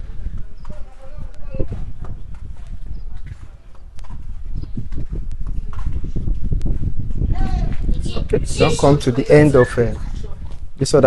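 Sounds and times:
faint voices: 0:00.0 - 0:06.2, 0:07.2 - 0:11.0
footsteps walking: 0:00.0 - 0:07.9.

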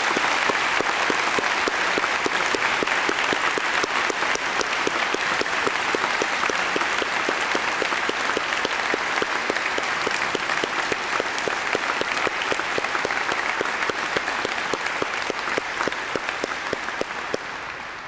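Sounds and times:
single person clapping: 0:00.0 - 0:17.7
audience applauding: 0:00.0 - 0:18.0.

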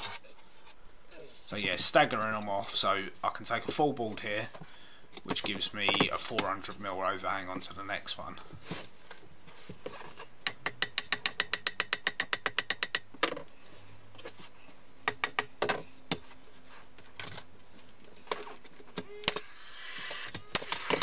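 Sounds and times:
hammer tapping wooden board: 0:10.4 - 0:13.4, 0:15.1 - 0:15.8.

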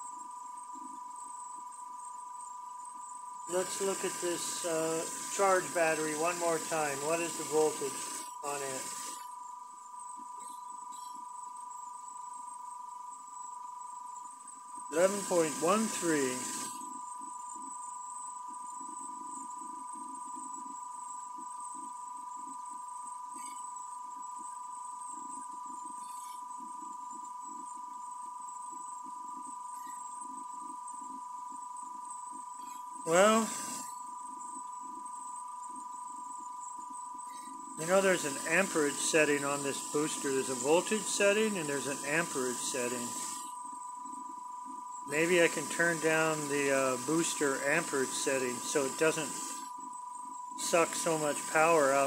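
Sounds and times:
faint flickering hum: 0:00.0 - 0:52.0
high electrical whine: 0:00.0 - 0:52.0.

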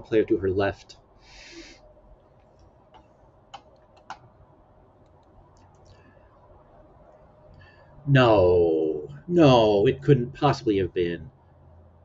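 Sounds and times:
short breath: 0:01.2 - 0:01.9, 0:07.5 - 0:08.0
faint sharp clicks: 0:02.4 - 0:04.3, 0:05.0 - 0:06.0.

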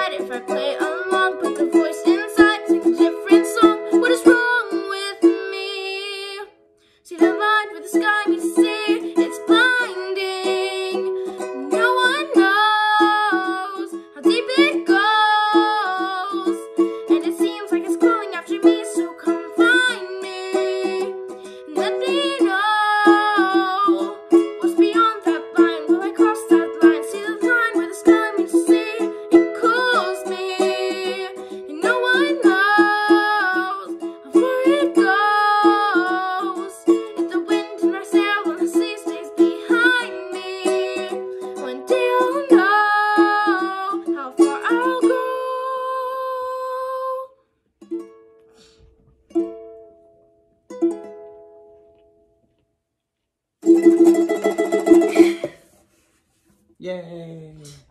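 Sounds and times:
plucked ukulele notes: 0:00.0 - 0:06.3, 0:07.2 - 0:47.1, 0:47.8 - 0:52.2, 0:53.6 - 0:55.5
ukulele strumming: 0:00.0 - 0:06.5, 0:07.1 - 0:47.2, 0:47.8 - 0:52.2, 0:53.6 - 0:55.7
girl singing: 0:00.0 - 0:47.4.

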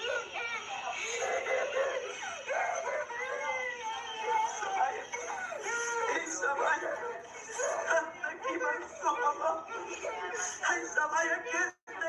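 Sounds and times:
girl wailing in fright: 0:00.0 - 0:08.1.

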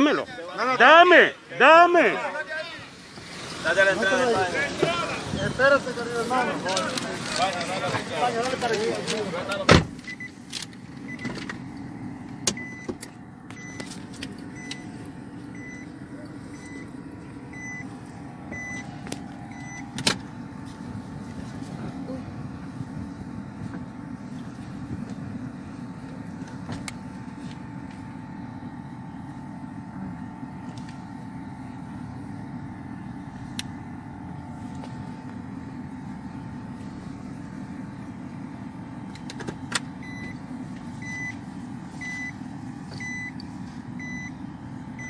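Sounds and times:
engine and road rumble: 0:00.0 - 0:45.0
faint steady whine: 0:00.0 - 0:45.0
car warning chime beeping: 0:10.0 - 0:10.4, 0:11.0 - 0:20.0, 0:40.0 - 0:45.0.

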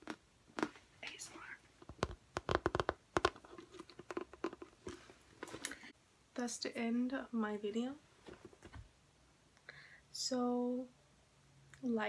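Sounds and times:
handbag clicks and knocks: 0:01.8 - 0:05.6.

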